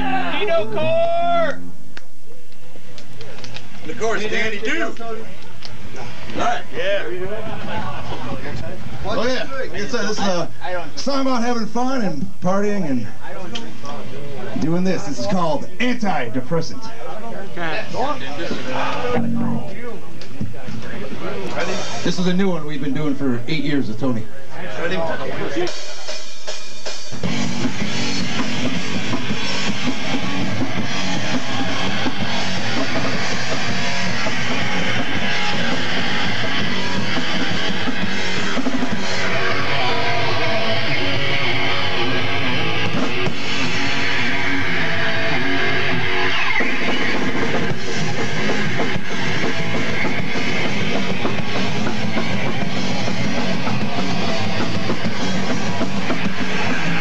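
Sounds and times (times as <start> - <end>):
punk band playing live: 19.1 - 19.7, 25.6 - 57.0.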